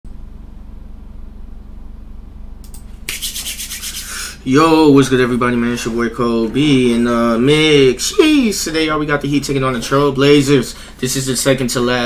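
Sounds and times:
low electrical hum: 0.1 - 12.0
loud rasping rubbing noise: 3.1 - 4.4.

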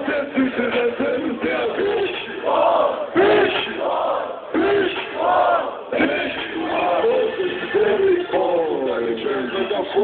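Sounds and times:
crowd shouting a chant: 1.4 - 8.6.

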